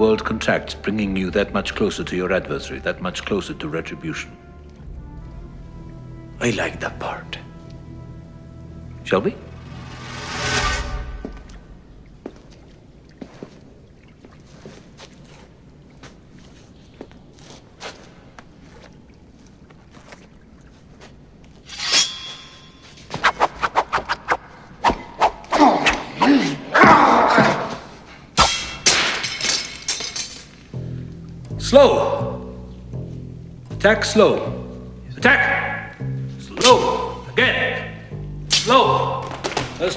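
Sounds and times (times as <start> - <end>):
sword blades clashing: 21.7 - 24.4, 28.4 - 30.7, 36.6 - 37.2, 38.4 - 39.9.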